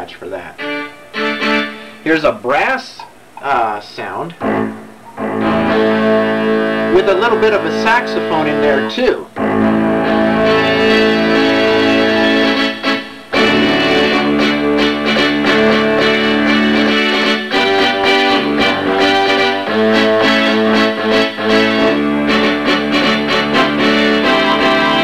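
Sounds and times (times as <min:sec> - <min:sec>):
synthesizer brass chords: 0:00.5 - 0:02.2, 0:04.4 - 0:25.0.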